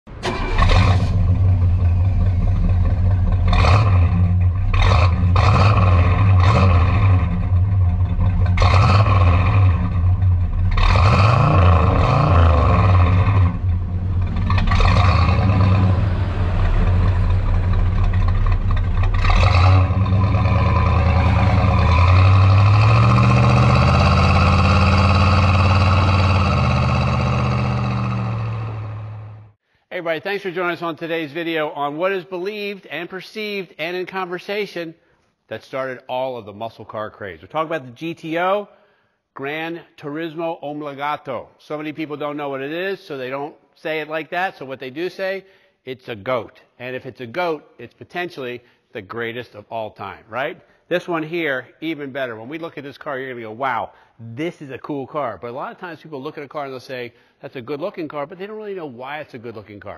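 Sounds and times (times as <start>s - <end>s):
car engine idling and revving: 0.1s - 29.6s.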